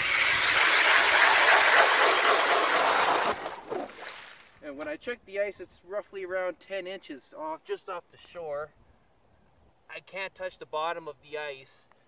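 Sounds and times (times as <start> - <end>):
ice auger cutting through ice: 0.0 - 4.1.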